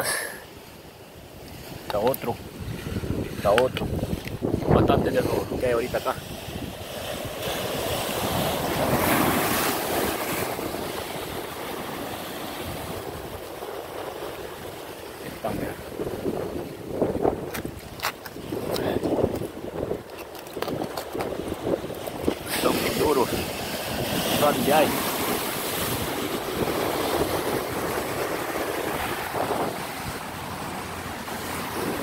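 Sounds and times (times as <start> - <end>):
surf washing over rocks: 0.0 - 32.0
wind buffeting microphone: 1.3 - 32.0.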